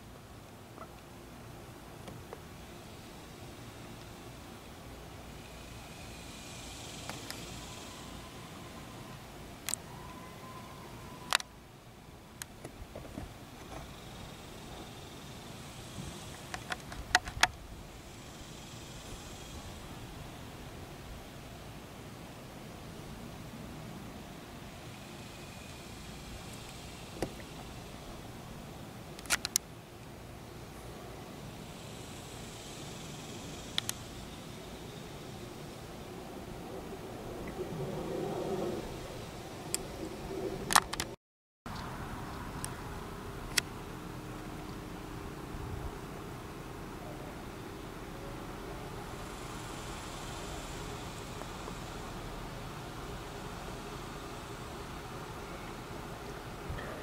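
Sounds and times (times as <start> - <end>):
low outdoor background noise: 0.0 - 57.0
faint hissy swells: 2.6 - 12.3
sharp clicks: 29.2 - 29.7, 33.7 - 34.0.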